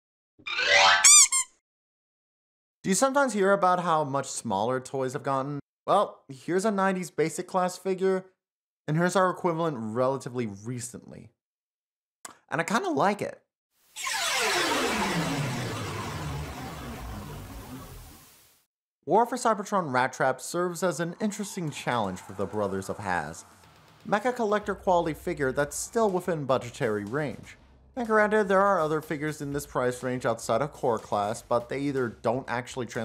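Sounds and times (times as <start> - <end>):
cartoon rising glide: 0.4 - 1.5, 13.9 - 18.6
whoosh sound effect: 21.0 - 23.7.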